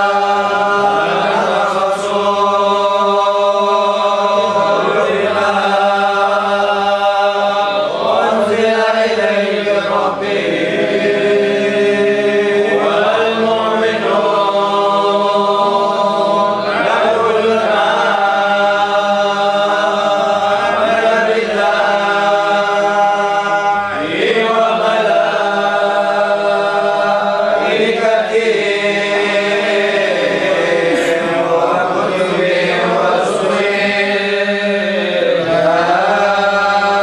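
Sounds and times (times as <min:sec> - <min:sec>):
group chanting long notes: 0:00.0 - 0:37.0.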